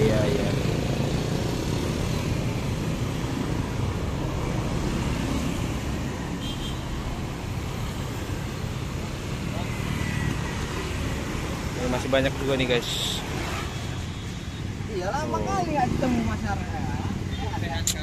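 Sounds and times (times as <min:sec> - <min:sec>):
road traffic rumble: 0:00.0 - 0:18.0.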